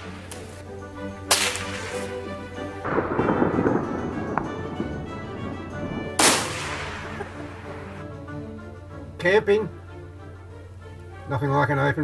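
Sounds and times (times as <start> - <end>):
background music: 0.0 - 12.0
sharp gunshots: 1.2 - 8.0
explosion blast: 2.8 - 8.0.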